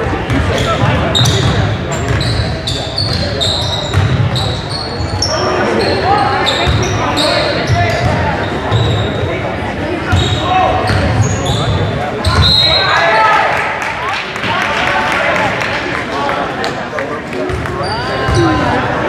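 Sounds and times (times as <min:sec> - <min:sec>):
sneakers squeaking: 0:00.0 - 0:13.0, 0:17.5 - 0:19.0
players shouting: 0:12.2 - 0:16.1.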